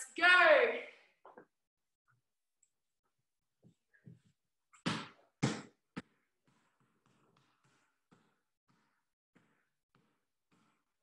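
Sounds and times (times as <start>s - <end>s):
basketball bouncing on wooden floor: 4.8s - 10.8s.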